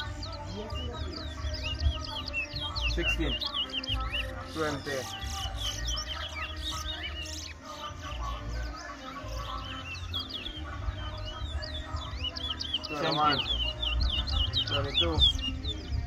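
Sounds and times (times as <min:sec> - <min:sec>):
finches singing whistled phrases: 0:00.0 - 0:16.0.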